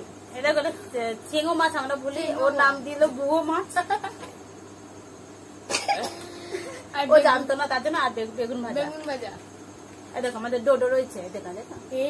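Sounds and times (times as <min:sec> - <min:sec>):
person coughing: 0:05.7 - 0:06.8.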